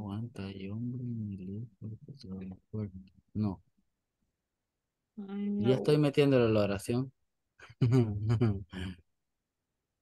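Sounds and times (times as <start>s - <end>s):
person speaking: 0.0s - 3.6s, 5.4s - 7.1s.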